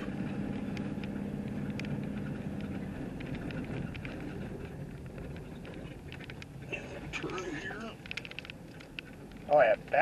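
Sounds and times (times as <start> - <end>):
car engine hum: 0.0 - 10.0.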